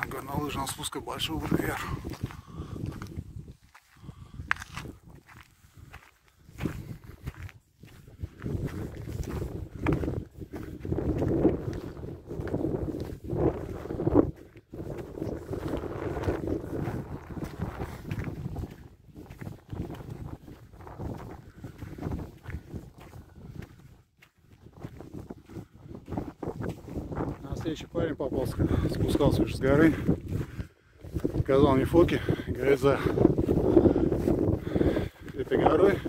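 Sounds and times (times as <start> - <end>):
footsteps on gravel: 0.0 - 36.0
wind buffeting microphone: 0.0 - 36.0.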